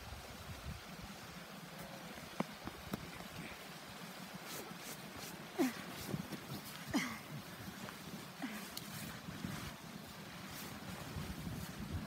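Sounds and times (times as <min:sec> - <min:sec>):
footsteps in deep snow: 0:04.2 - 0:12.0.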